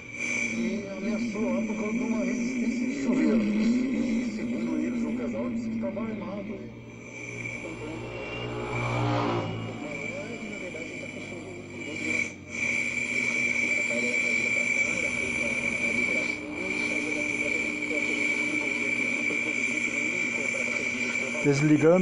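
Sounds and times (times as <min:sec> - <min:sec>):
high-pitched radio whistle: 0:05.6 - 0:22.0
faint broadcast speech: 0:13.6 - 0:22.0.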